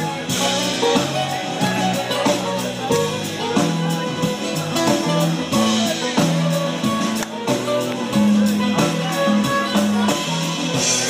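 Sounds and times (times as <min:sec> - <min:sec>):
bass line: 0:00.0 - 0:11.0
plucked strings: 0:00.0 - 0:11.0
steady beat: 0:00.0 - 0:11.0
strummed acoustic guitars: 0:00.0 - 0:11.0.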